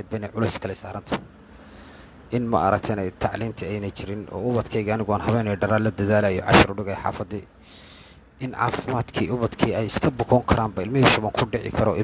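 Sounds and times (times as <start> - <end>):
man talking: 0.0 - 1.4, 2.3 - 7.6, 8.4 - 12.0
faint background hiss: 0.0 - 12.0.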